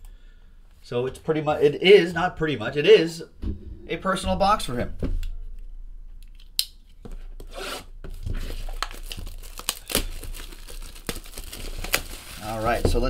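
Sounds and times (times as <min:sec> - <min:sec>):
plastic wrap crinkling and tearing: 0:07.6 - 0:13.0.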